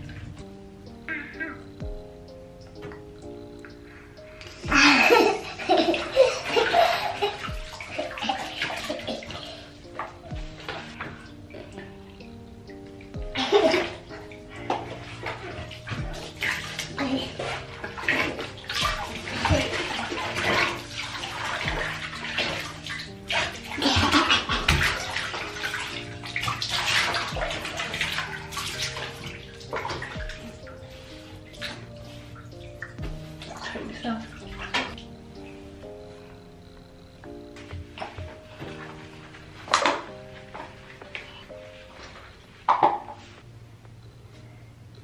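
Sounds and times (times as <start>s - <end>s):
background music: 0.0s - 45.0s
water splashing into bath: 1.2s - 12.3s, 12.9s - 35.5s, 37.5s - 43.3s.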